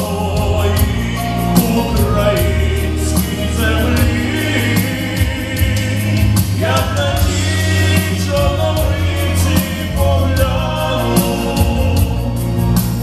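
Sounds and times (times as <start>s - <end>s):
bass and beat accompaniment: 0.0s - 13.0s
man singing a ballad: 0.0s - 13.0s.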